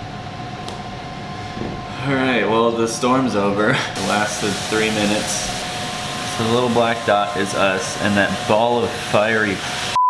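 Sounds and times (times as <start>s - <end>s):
air conditioning hum and hiss: 0.0s - 10.0s.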